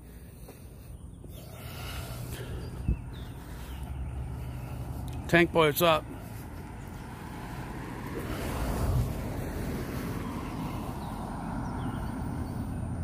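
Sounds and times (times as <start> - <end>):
low rumble of traffic: 0.0 - 13.0
wind: 0.0 - 13.0
car passing: 0.4 - 13.0.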